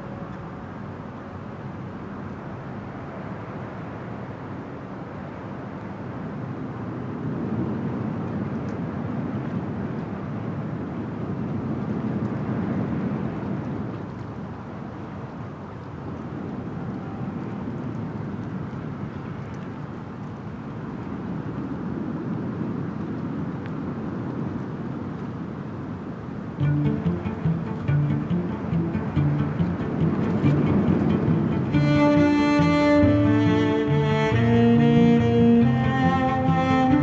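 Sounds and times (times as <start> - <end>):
wind gusting over microphone: 0.0 - 37.0.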